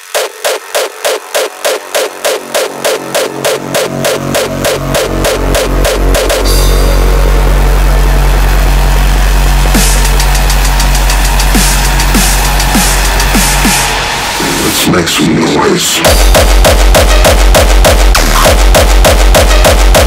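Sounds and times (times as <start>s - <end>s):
loud continuous bass drone: 0.0s - 15.2s, 16.0s - 20.0s
hardcore techno pulse: 0.0s - 20.0s.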